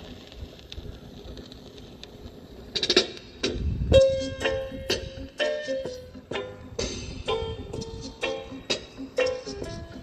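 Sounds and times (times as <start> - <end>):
vinyl record hiss and crackle: 0.0 - 10.0.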